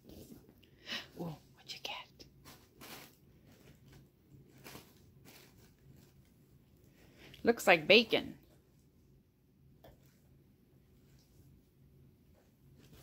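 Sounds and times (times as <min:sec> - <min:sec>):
tissue paper and cardboard rustling: 0:02.2 - 0:06.6.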